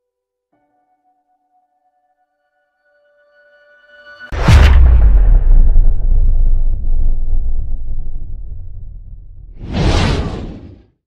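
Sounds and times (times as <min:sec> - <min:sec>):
deep rumbling boom: 0:04.4 - 0:10.8
whoosh: 0:04.4 - 0:11.0.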